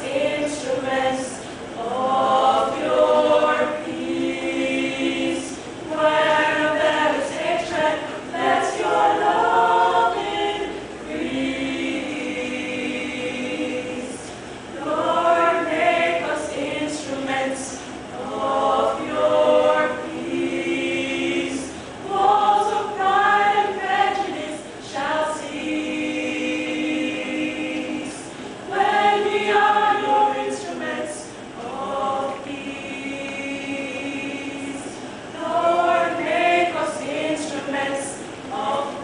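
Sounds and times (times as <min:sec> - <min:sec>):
women's choir singing a cappella: 0:00.0 - 0:39.0.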